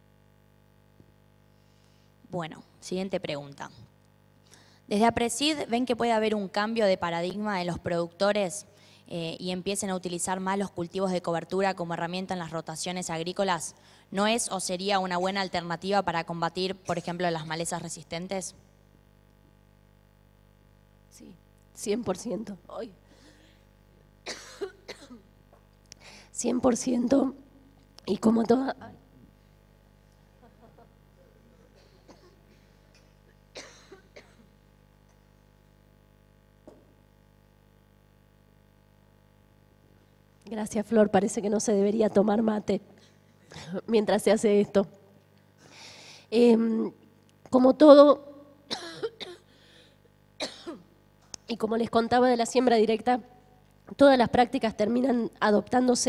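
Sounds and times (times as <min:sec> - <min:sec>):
woman coughing: 0:24.2 - 0:25.3, 0:31.5 - 0:34.5, 0:48.7 - 0:49.5, 0:50.4 - 0:51.0.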